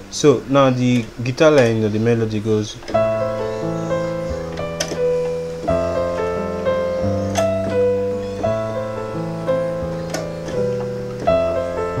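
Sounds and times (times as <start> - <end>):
piano melody: 0.0 - 12.0.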